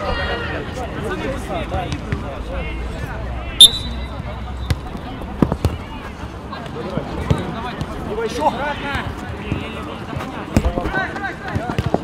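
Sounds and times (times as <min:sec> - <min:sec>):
shrill whistle blast: 0:03.6 - 0:04.2.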